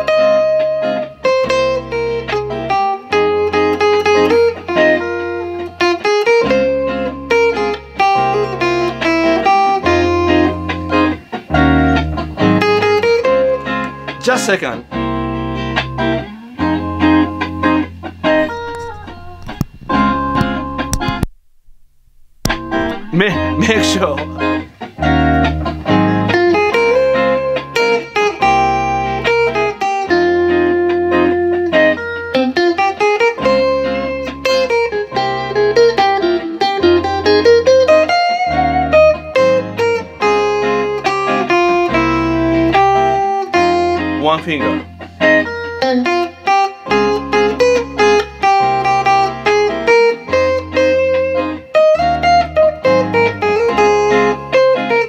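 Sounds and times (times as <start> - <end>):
backing track of bass and chords: 0.0 - 55.0
electric guitar melody: 0.0 - 55.0.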